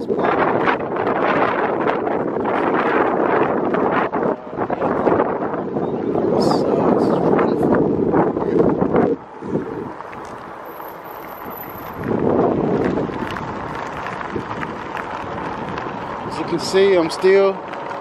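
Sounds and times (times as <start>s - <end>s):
road noise: 0.0s - 18.0s
wind buffeting microphone: 0.0s - 18.0s.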